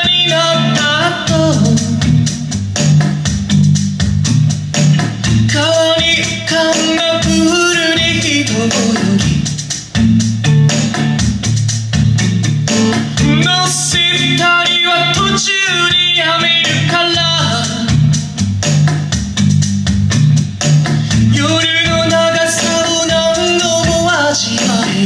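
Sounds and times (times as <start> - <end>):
man singing: 0.0 - 2.6, 5.4 - 9.6, 13.2 - 18.1, 21.1 - 25.0.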